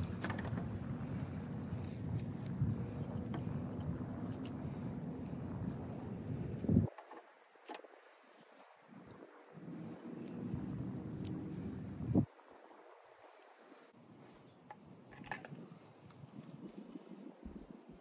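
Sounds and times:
low engine rumble: 0.0 - 6.9, 9.6 - 12.3
faint handling clicks and rustles: 0.0 - 9.0.

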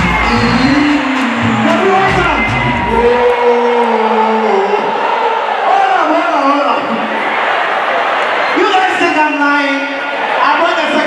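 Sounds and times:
audience noise: 0.0 - 11.0.

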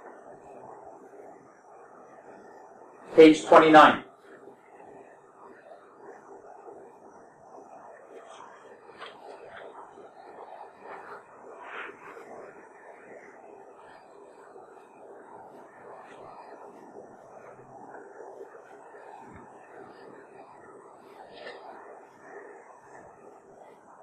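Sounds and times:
soft whispering: 2.2 - 14.7, 15.8 - 24.0.

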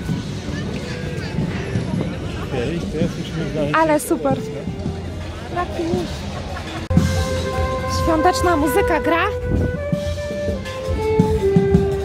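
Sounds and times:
crowd chatter: 0.0 - 12.0
low beat: 4.2 - 12.0
violins playing slow melody: 7.0 - 12.0.

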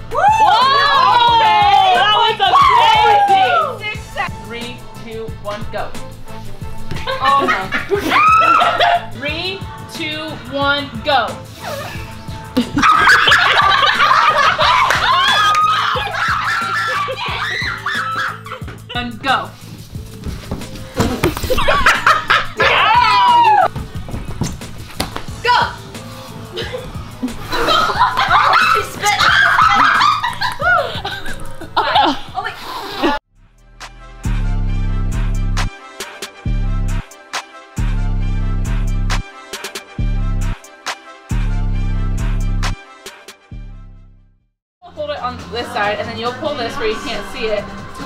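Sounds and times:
background music with even beat: 0.0 - 43.9, 44.9 - 48.0
women shouting excitedly: 0.1 - 4.0, 7.4 - 9.0, 14.3 - 18.5, 22.6 - 23.7, 25.4 - 25.8, 28.2 - 31.0
women laughing: 7.0 - 9.1, 12.6 - 18.9, 21.4 - 23.4, 26.5 - 33.2.

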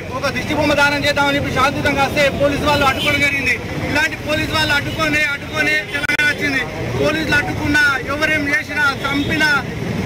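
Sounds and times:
man speaking: 0.0 - 9.8.

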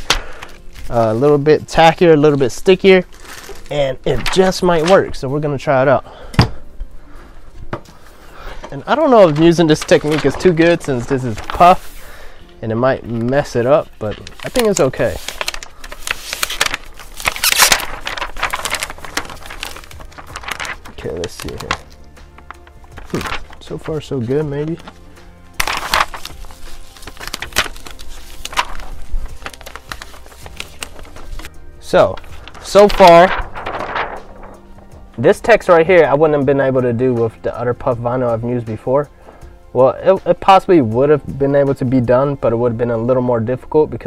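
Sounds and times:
vinyl peeling crackle: 0.0 - 5.1, 8.0 - 35.8.

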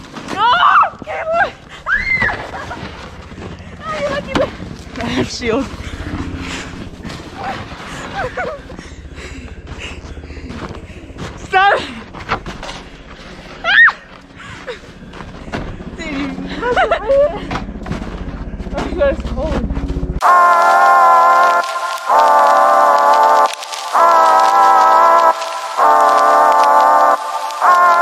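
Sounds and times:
people shrieking and laughing: 0.4 - 3.0, 7.5 - 8.8, 16.3 - 17.5
music: 20.2 - 28.0.

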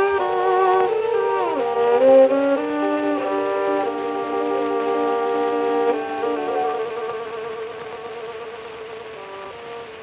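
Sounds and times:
accompanying chord: 0.0 - 10.0
record surface hiss: 0.0 - 10.0
violin holding long note: 0.0 - 10.0.

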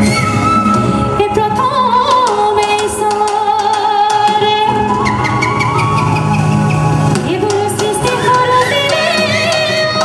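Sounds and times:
live band music: 0.0 - 10.0
drum strikes: 2.1 - 10.0.

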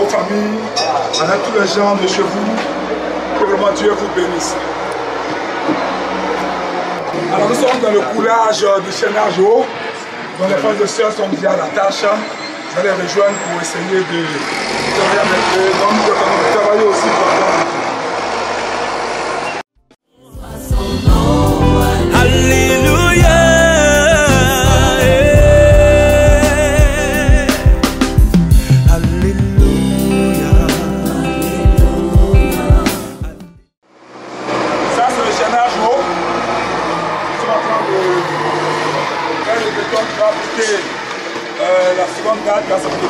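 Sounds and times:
men talking: 0.0 - 5.8, 6.4 - 17.6, 34.8 - 43.0.

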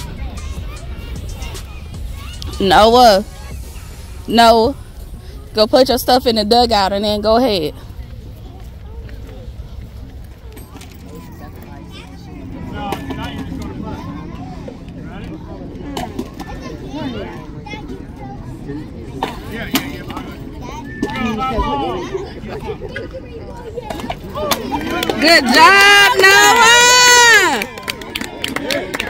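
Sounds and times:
spectators chattering: 0.0 - 29.0
high-pitched shouting and cheering: 24.4 - 28.9.

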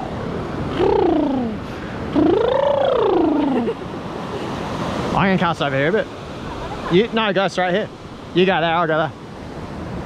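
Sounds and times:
surf washing: 0.0 - 10.0
person calling wordlessly: 0.7 - 1.6, 2.2 - 3.7.

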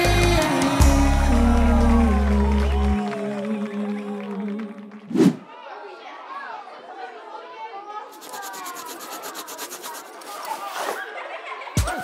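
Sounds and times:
crayons scribbling on paper: 8.1 - 11.0.

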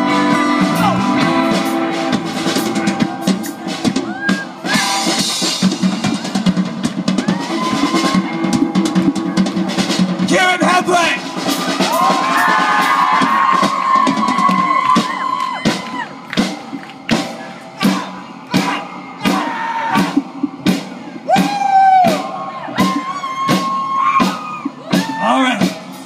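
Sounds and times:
rock band playing: 0.0 - 26.0
shouts and whoops: 4.0 - 4.9, 7.2 - 8.5, 11.7 - 16.2, 21.2 - 25.6.

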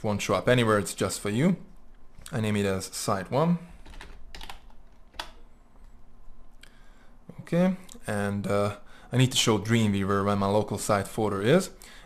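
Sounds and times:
computer keyboard typing: 3.8 - 5.4.

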